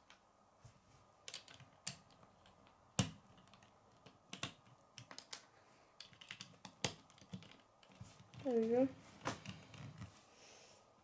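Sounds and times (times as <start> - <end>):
plastic bricks clicking together: 1.3 - 8.4.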